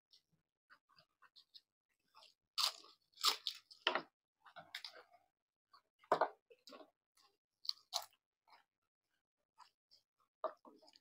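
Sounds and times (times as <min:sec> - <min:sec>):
crunchy food being chewed: 0:00.8 - 0:03.8, 0:06.6 - 0:08.7.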